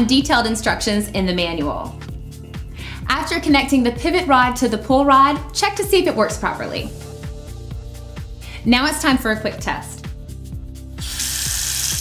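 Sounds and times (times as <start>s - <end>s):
water running from faucet: 11.0s - 12.0s.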